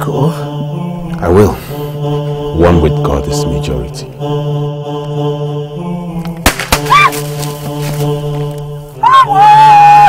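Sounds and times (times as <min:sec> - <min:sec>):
droning music score: 0:00.0 - 0:10.0
gunshots: 0:06.4 - 0:07.0.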